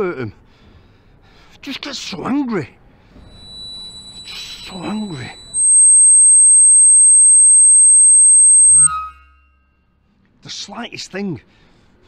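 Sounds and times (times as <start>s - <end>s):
cluster of short tones: 3.3s - 9.5s
high-pitched electronic tone: 3.3s - 9.5s.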